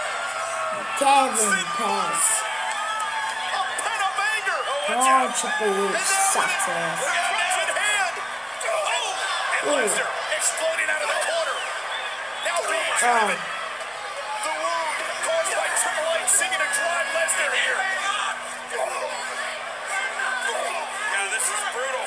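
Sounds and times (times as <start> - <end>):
voices: 0.8 - 2.4, 4.8 - 7.2, 9.7 - 10.0, 13.0 - 13.5.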